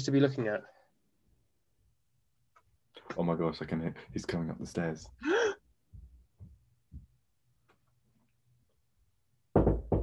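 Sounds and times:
footsteps on stairs: 0:05.9 - 0:07.2.

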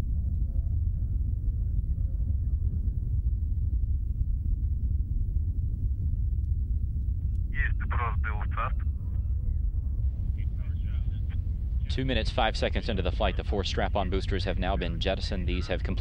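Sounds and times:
distant rocket rumble: 0:00.0 - 0:16.0.

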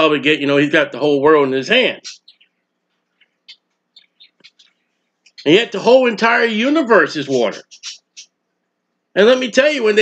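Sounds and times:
faint bird chirps: 0:01.9 - 0:05.7, 0:07.2 - 0:08.4.

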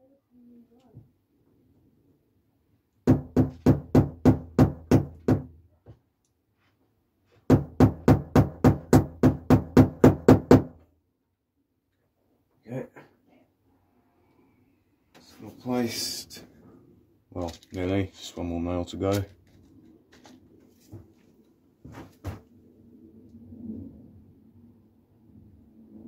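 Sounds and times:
hammer tapping a nail: 0:07.5 - 0:10.7.

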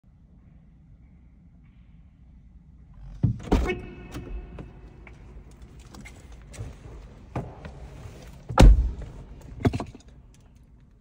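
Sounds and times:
car door handle and latch clunks: 0:03.2 - 0:10.1.

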